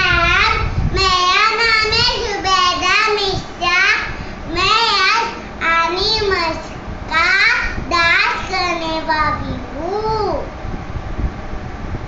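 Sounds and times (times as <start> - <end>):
young girl speaking: 0.0 - 10.6.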